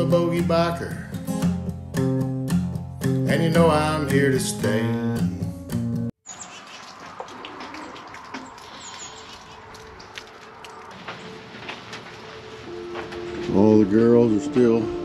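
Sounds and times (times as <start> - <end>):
country song with acoustic guitar: 0.0 - 6.1, 12.9 - 15.0
water drips: 6.3 - 10.9.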